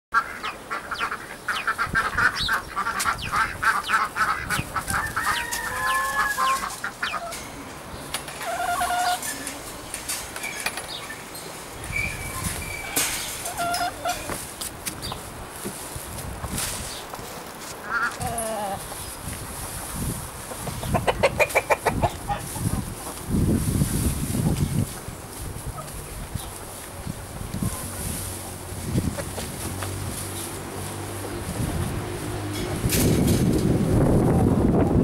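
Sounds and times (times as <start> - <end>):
chickens clucking: 0.2 - 34.3.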